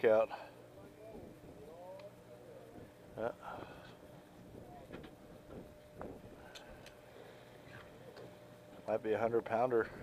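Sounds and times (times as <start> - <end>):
boat engine humming: 0.0 - 10.0
faint voices: 0.2 - 8.5.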